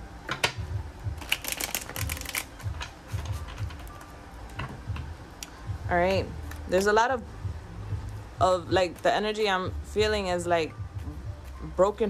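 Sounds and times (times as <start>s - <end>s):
cards riffle shuffled: 1.2s - 2.5s.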